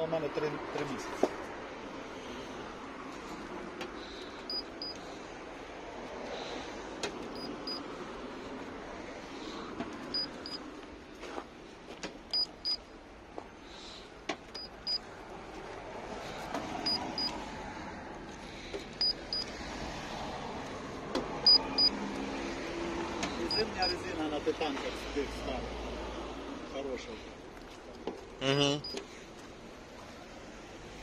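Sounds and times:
gauge high double beeps: 4.5 - 5.0, 10.1 - 10.6, 12.3 - 12.8, 14.6 - 15.0, 16.8 - 17.4, 19.0 - 19.5, 21.4 - 22.0, 23.5 - 24.0.

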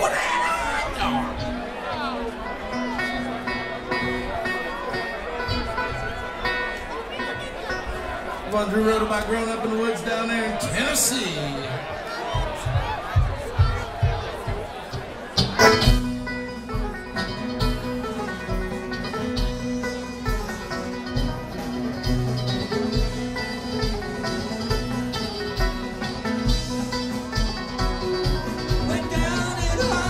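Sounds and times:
bluegrass band playing: 0.0 - 30.0.

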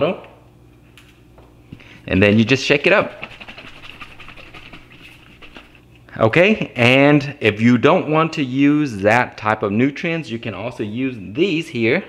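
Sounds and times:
liquid sloshing in shaken bottle: 2.2 - 5.9.

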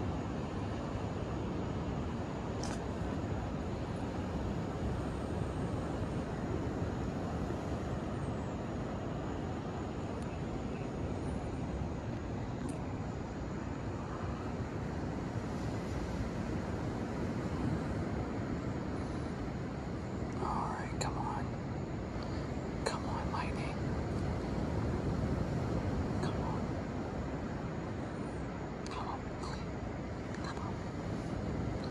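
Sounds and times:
low outdoor rumble: 0.0 - 31.9.

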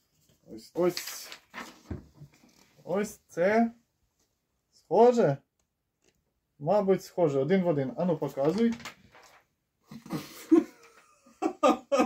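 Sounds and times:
paper rustling: 0.0 - 2.9, 8.0 - 9.5.

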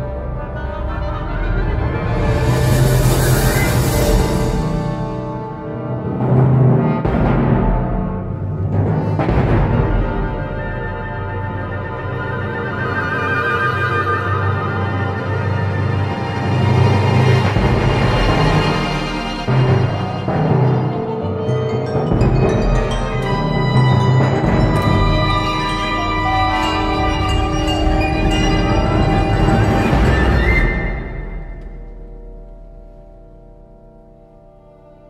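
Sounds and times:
orchestra playing low dark chords: 13.8 - 35.0.

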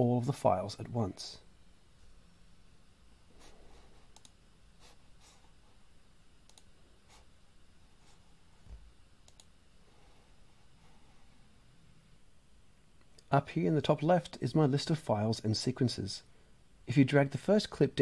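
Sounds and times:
computer mouse clicks: 4.1 - 4.4, 6.4 - 6.7, 9.2 - 9.5.

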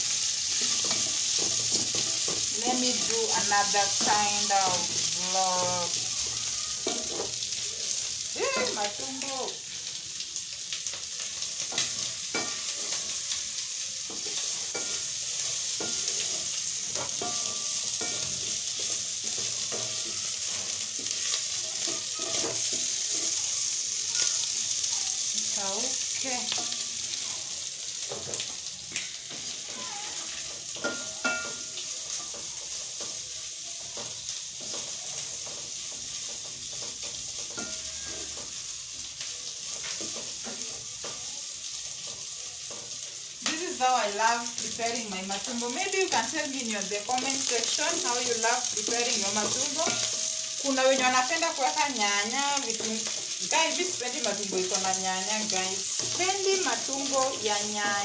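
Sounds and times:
food sizzling in a pan: 0.0 - 58.0
wooden spoon scraping a pan: 0.5 - 5.4, 14.1 - 24.4, 47.1 - 58.0.

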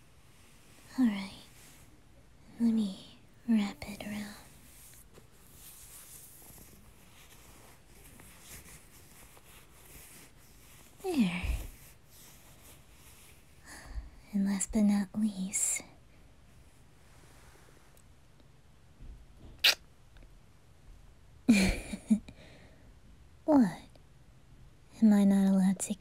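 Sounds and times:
woman murmuring softly: 11.0 - 11.8.

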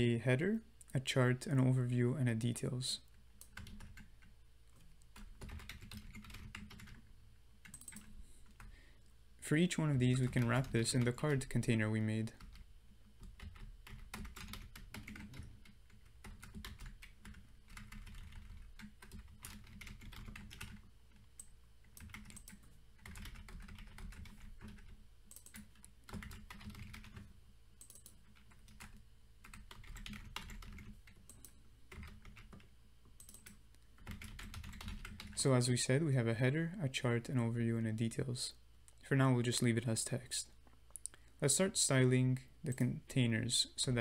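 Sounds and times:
computer keyboard typing: 3.4 - 8.7, 10.0 - 11.6, 12.3 - 35.4.

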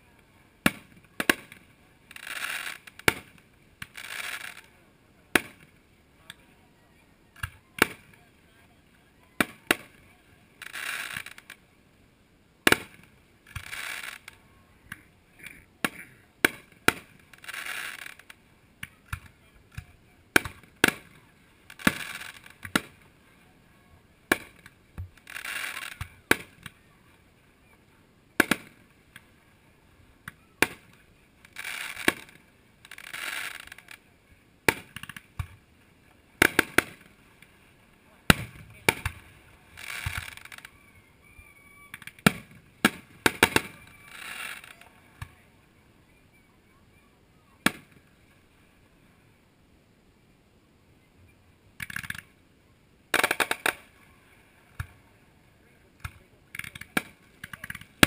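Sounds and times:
firework shells bursting: 12.7 - 23.1, 24.3 - 26.8, 28.4 - 29.3, 30.2 - 34.0, 34.6 - 35.6, 36.4 - 37.5, 38.2 - 40.7, 41.9 - 45.3, 53.1 - 53.9, 56.0 - 58.0.

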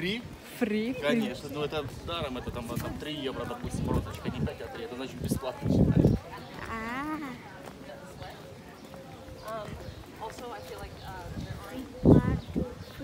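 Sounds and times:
footsteps on stone paving: 0.0 - 13.0
people talking: 0.7 - 13.0.

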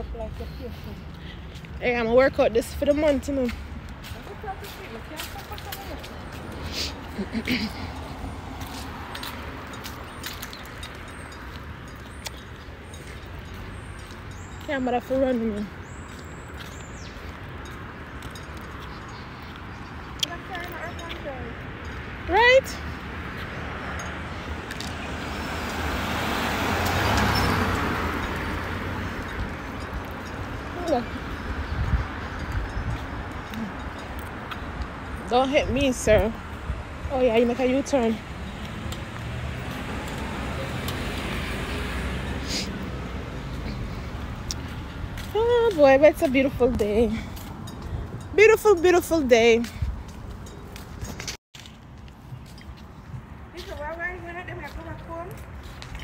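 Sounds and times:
street traffic: 0.0 - 56.0
car driving past: 23.6 - 29.3, 38.2 - 45.0.

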